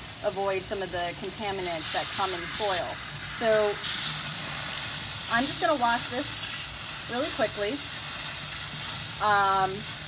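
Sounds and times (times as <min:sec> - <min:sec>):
faucet water spraying: 0:00.0 - 0:10.0.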